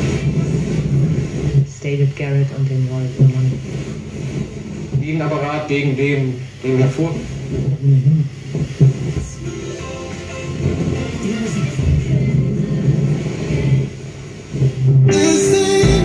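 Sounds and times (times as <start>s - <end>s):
radio music through speakers: 4.9s - 16.0s.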